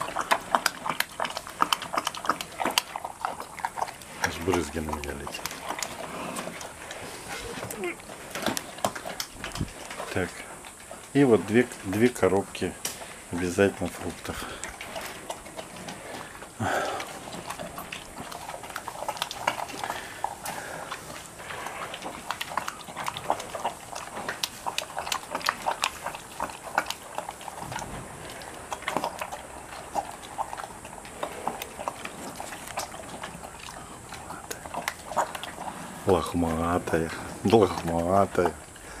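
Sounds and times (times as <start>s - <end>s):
bear eating wet porridge: 0.0s - 39.0s.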